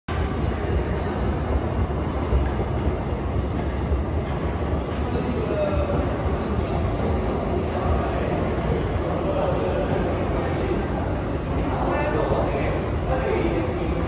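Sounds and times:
low rumble of metro station: 0:00.1 - 0:14.0.

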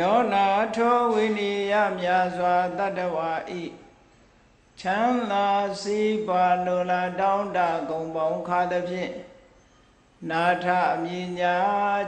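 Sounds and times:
man chanting through microphone: 0:00.0 - 0:03.9, 0:04.8 - 0:09.5, 0:10.2 - 0:12.0.

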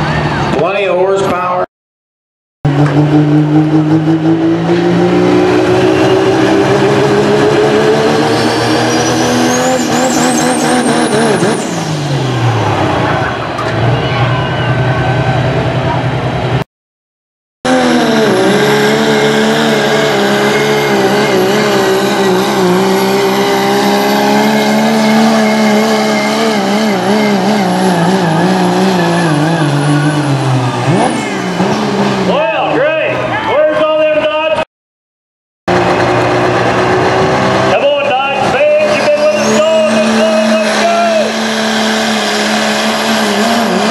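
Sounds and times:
pickup diesel engine at full throttle: 0:02.6 - 0:16.6, 0:17.6 - 0:34.1, 0:35.7 - 0:43.9
turbo whistle: 0:05.6 - 0:06.7, 0:38.9 - 0:41.2.

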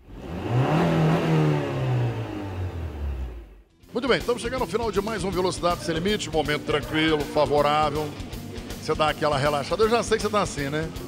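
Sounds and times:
car engine: 0:00.0 - 0:03.8.

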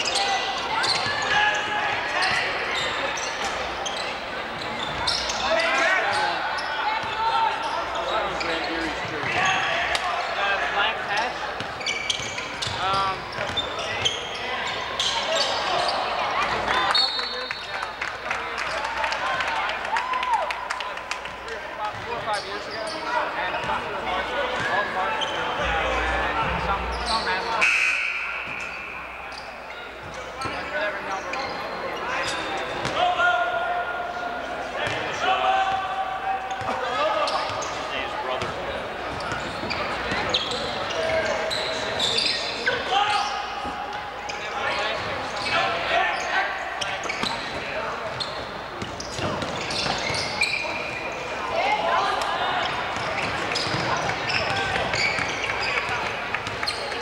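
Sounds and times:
sneakers squeaking: 0:00.0 - 0:18.0, 0:21.8 - 0:33.1, 0:34.7 - 0:57.0
voices of players and spectators: 0:00.0 - 0:57.0.

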